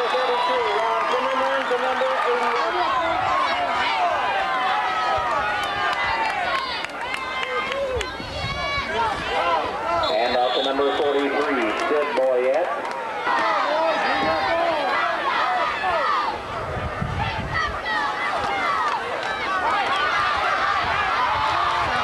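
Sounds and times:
loud yells: 0.0 - 12.2, 13.1 - 16.5, 17.2 - 22.0
crowd talking and shouting: 0.0 - 22.0.

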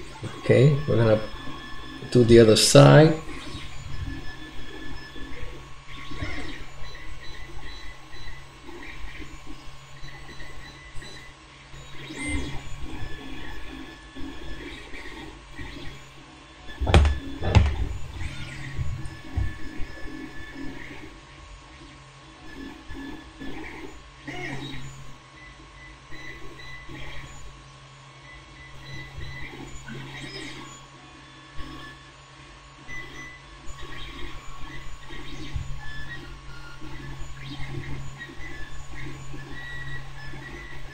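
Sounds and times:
steady hum: 0.0 - 40.9
louder knocks: 16.8 - 18.0.

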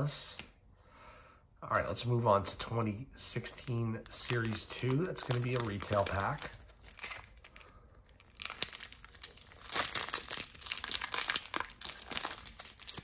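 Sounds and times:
foil wrapper crinkling and tearing: 3.5 - 13.0.

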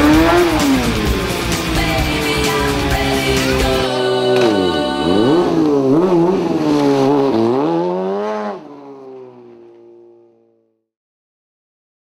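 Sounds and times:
music: 0.0 - 6.1
motorcycle engine revving: 0.0 - 10.8.

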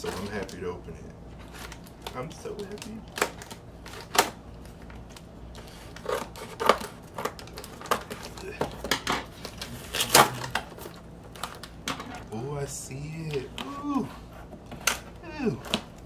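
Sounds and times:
scissors slitting packing tape: 9.6 - 10.6.

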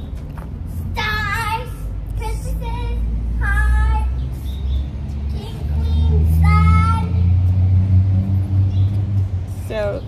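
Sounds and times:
engine rumble: 0.0 - 10.0.

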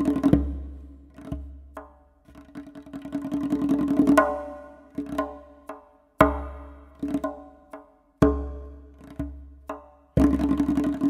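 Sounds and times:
goblet drum fast roll: 2.4 - 11.0.

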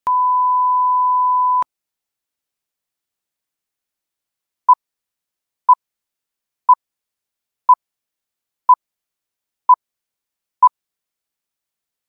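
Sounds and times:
pure test tone beep: 0.1 - 1.7.

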